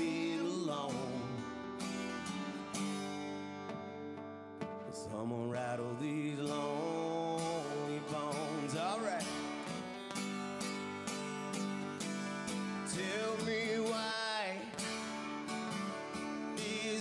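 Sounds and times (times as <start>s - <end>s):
acoustic guitars strumming chords: 0.0s - 17.0s
guitar lead melody with bent notes: 0.0s - 17.0s.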